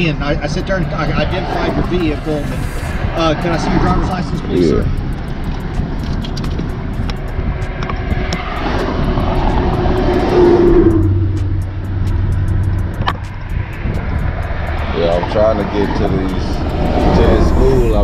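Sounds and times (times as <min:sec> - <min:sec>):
highway traffic rumble: 0:00.0 - 0:18.0
loud vehicle passing: 0:00.0 - 0:18.0.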